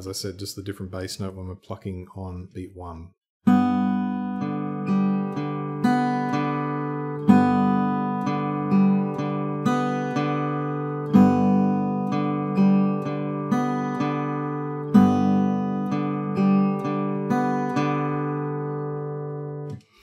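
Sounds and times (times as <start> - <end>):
acoustic guitar fingerpicking: 3.5 - 20.0.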